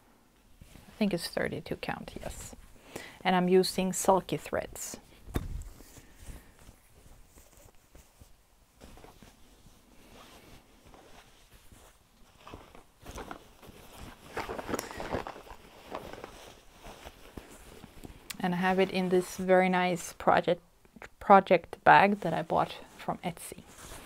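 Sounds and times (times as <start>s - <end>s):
fabric rustling and crinkling: 0.2s - 20.4s, 21.8s - 24.0s.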